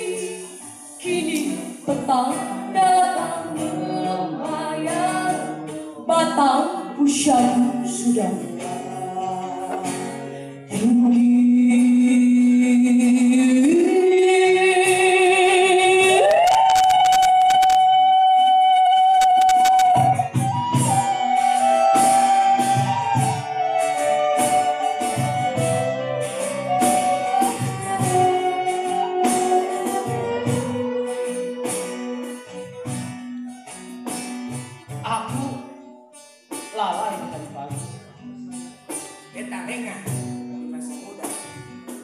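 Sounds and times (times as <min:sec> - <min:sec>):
woman singing: 0:00.0 - 0:20.2, 0:35.0 - 0:35.9
violin: 0:00.0 - 0:34.2
acoustic band music: 0:00.0 - 0:42.0
rhythmic guitar strumming: 0:00.0 - 0:42.0.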